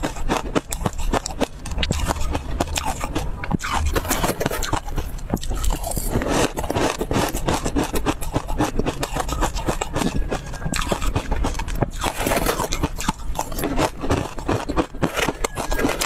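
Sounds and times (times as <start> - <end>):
crunching and chewing food: 0.0 - 16.0
metal spoon scraping bowl: 3.6 - 16.0.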